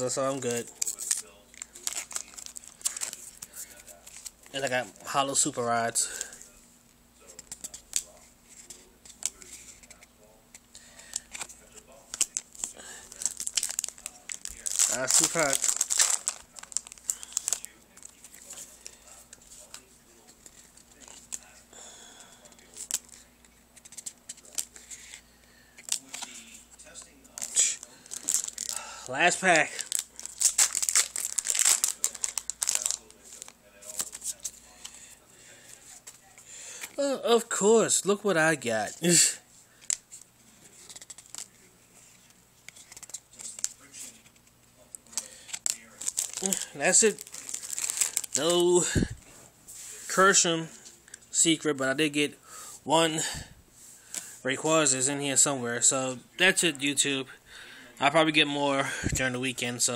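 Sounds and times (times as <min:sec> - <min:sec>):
cards crinkling: 0:00.1 - 0:06.4, 0:07.3 - 0:37.0, 0:38.1 - 0:52.0.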